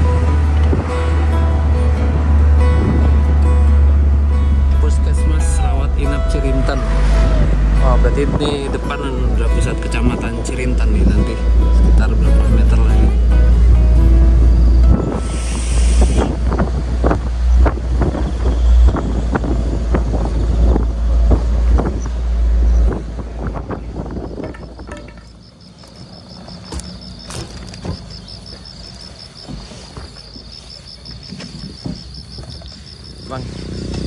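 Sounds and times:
background music: 0:00.0 - 0:15.9
minibus running: 0:00.0 - 0:34.0
wind on microphone: 0:02.2 - 0:03.4, 0:14.2 - 0:25.4, 0:31.0 - 0:33.0
insect chirping: 0:14.1 - 0:34.0
rattling knocks: 0:23.8 - 0:25.7.

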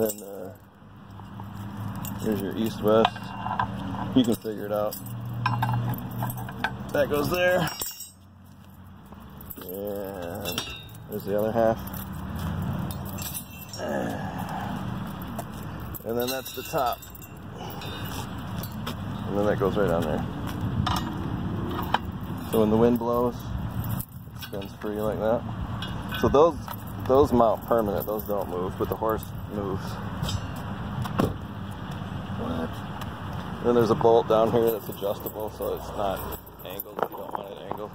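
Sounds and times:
highway traffic rumble: 0:00.0 - 0:37.9.

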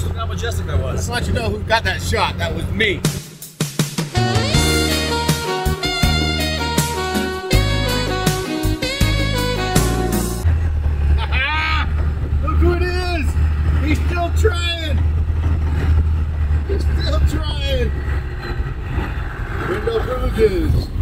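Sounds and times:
voices: 0:00.0 - 0:03.1, 0:11.2 - 0:15.0, 0:16.6 - 0:18.2, 0:19.6 - 0:21.0
diesel engine droning: 0:00.0 - 0:03.2, 0:04.2 - 0:21.0.

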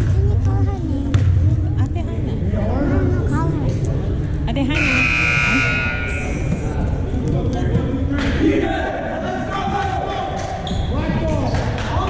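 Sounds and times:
spectators' voices: 0:00.0 - 0:12.0
scoreboard buzzer: 0:04.8 - 0:06.6.

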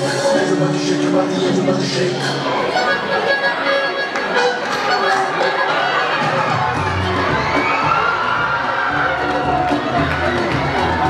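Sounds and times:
music: 0:00.0 - 0:11.0
audience cheering and shouting: 0:01.8 - 0:11.0
bass beat: 0:06.1 - 0:11.0.

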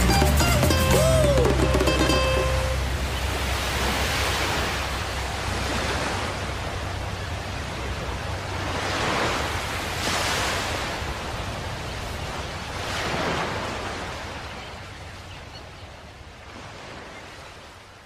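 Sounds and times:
ocean waves breaking: 0:00.0 - 0:18.0.

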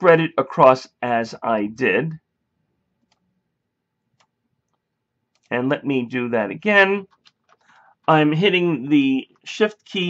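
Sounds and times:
man's voice: 0:00.0 - 0:02.2, 0:05.5 - 0:07.0, 0:08.1 - 0:10.0
computer mouse click: 0:04.2 - 0:05.5.

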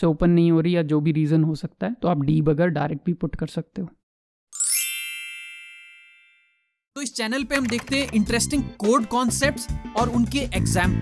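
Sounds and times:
bright ringing chord: 0:04.6 - 0:06.7.

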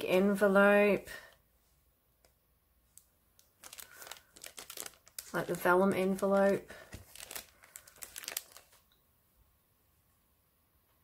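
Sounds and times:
paper crinkling and rustling: 0:03.4 - 0:08.9.

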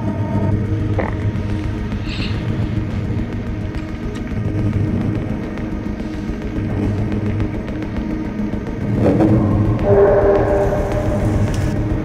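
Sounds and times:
low rumbling drone: 0:00.0 - 0:12.0
held horn-like tones: 0:09.1 - 0:12.0.

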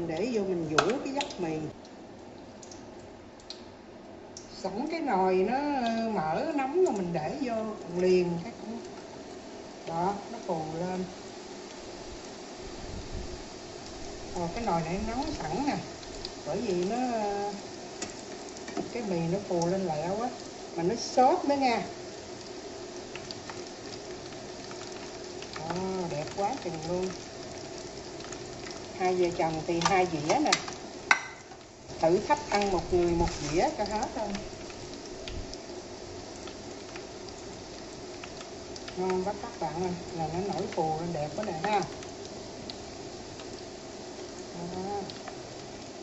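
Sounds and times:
noodles deep-frying in oil: 0:00.0 - 0:46.0
small oil crackles: 0:00.0 - 0:46.0.

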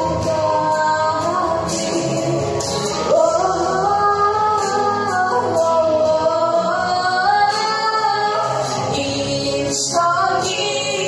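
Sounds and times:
pop backing track: 0:00.0 - 0:11.0.

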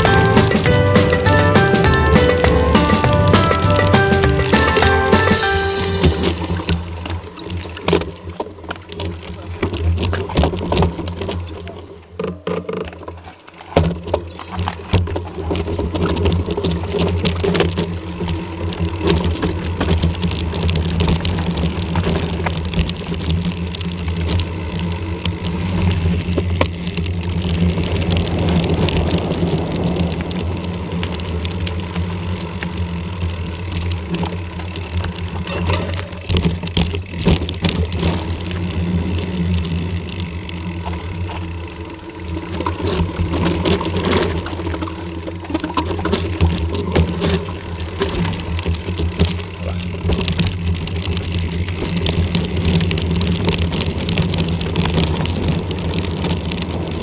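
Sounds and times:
bike rattling over stones: 0:00.0 - 0:57.0
bike tyres rumbling on gravel: 0:00.0 - 0:57.0
wind: 0:00.0 - 0:57.0.

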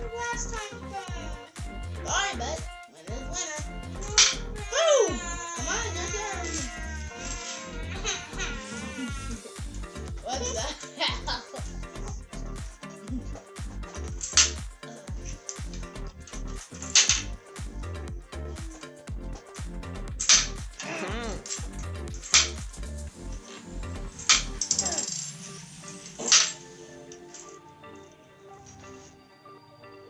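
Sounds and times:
background music: 0:00.0 - 0:30.0.

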